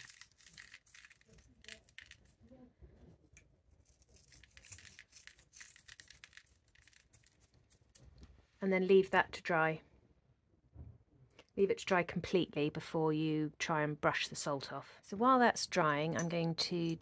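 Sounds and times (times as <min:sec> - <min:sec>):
salt flakes crackling: 0:00.0 - 0:02.5, 0:03.8 - 0:08.1.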